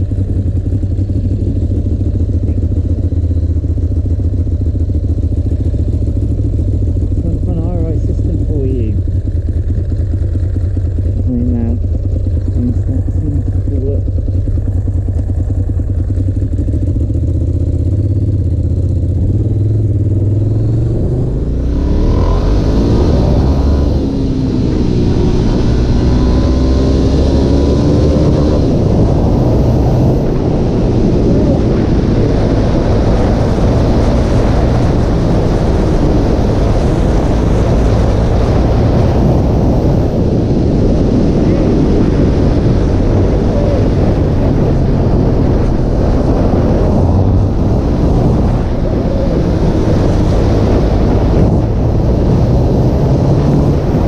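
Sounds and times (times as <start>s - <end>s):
motorcycle engine revving: 0.0s - 54.0s
rushing wind noise: 0.0s - 54.0s.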